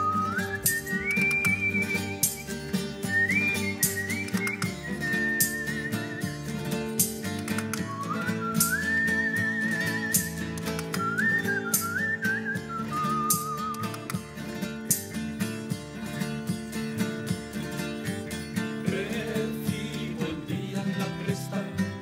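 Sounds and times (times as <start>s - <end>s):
strummed acoustic guitars: 0.0s - 22.0s
whistled folk melody: 0.0s - 22.0s.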